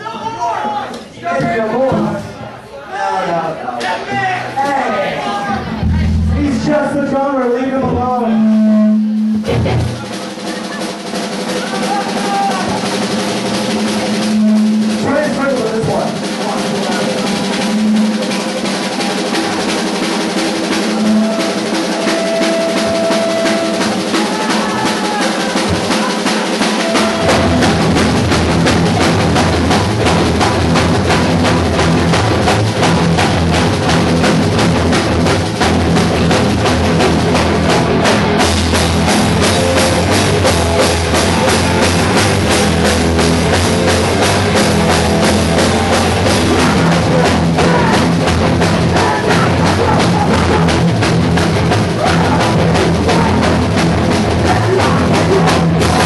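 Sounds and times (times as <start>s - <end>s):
drum kit played fast: 4.1s - 56.0s
bass guitar: 5.4s - 10.2s, 12.5s - 19.7s, 26.7s - 56.0s
sustained electric guitar: 5.5s - 7.1s, 7.8s - 10.2s, 26.8s - 56.0s.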